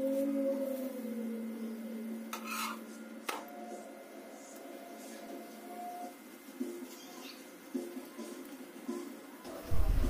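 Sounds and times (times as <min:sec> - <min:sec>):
spatula scraping flatbread on pan: 0:02.4 - 0:02.8.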